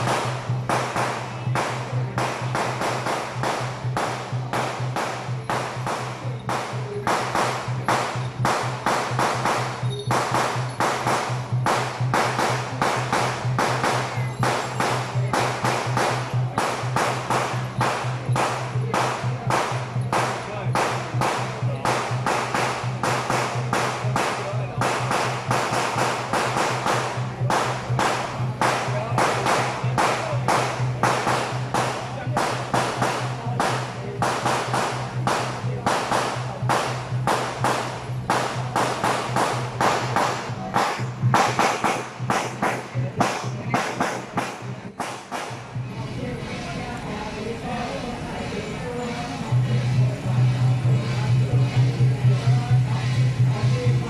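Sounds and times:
percussion band drums and cymbals: 0.0s - 46.0s, 48.8s - 54.0s.

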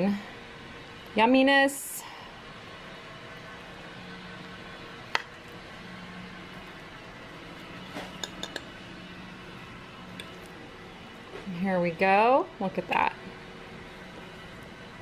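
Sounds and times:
fork clinking on ceramic plate: 8.2s - 8.7s.

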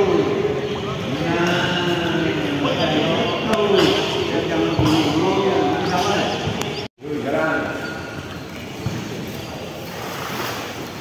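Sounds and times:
pool water splashing: 9.0s - 11.0s.

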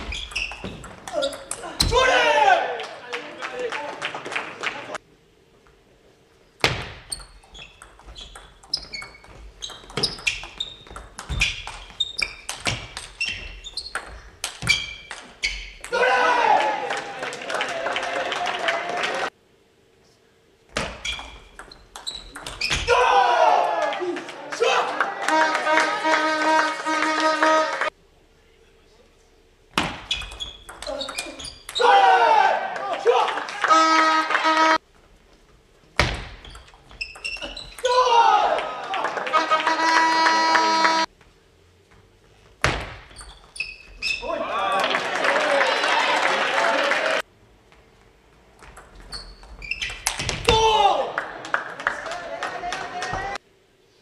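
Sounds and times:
spectators shouting and cheering: 1.5s - 5.0s, 15.9s - 19.3s, 22.8s - 27.9s, 31.8s - 34.8s, 37.8s - 41.1s, 44.2s - 47.2s, 50.4s - 53.4s.

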